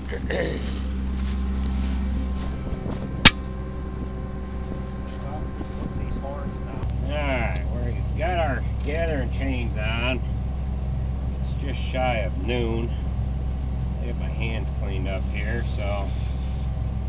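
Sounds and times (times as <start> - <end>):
engine idling: 0.0 - 17.0.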